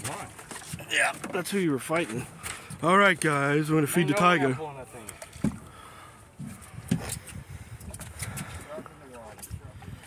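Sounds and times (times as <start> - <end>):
water lapping against boat hull: 0.0 - 10.0.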